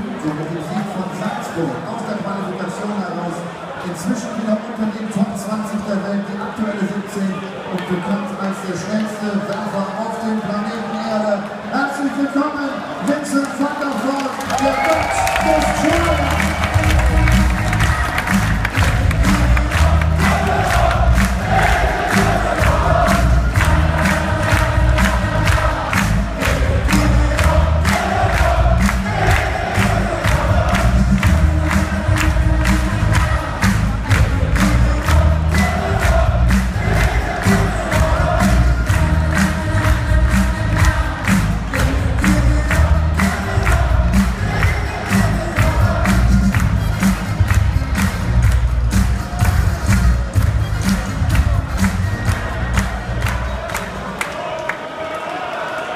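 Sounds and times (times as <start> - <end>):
crowd cheering and chanting: 0.0 - 55.9
music with pounding beat: 15.5 - 53.6.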